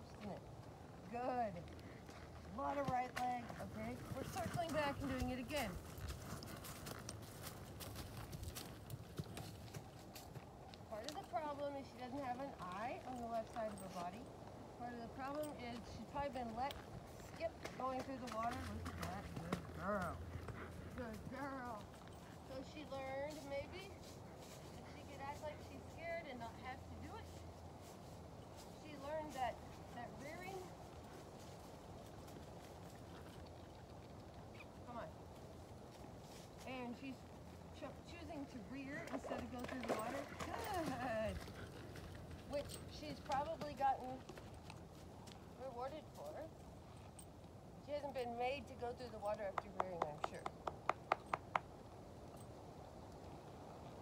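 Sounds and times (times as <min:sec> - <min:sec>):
hoofbeats on dirt: 0:00.0 - 0:52.5.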